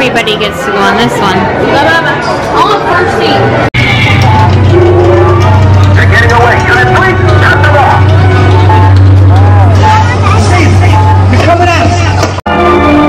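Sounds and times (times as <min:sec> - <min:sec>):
ride soundtrack music: 0:03.4 - 0:13.0
low rumble: 0:03.5 - 0:11.8.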